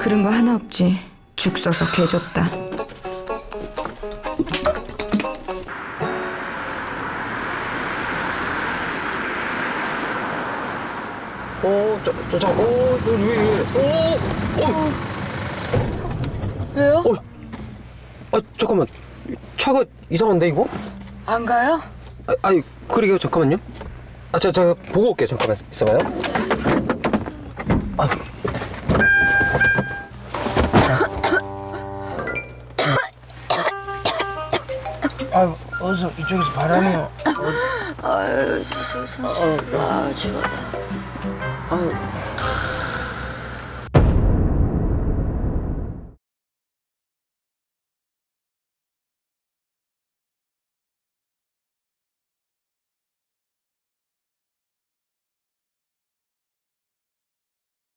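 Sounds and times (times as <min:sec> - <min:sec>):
background music: 0:00.0 - 0:06.9, 0:33.6 - 0:43.6
vehicle road noise: 0:01.8 - 0:43.9
held musical chord: 0:05.5 - 0:07.3, 0:31.1 - 0:32.6, 0:33.7 - 0:42.6.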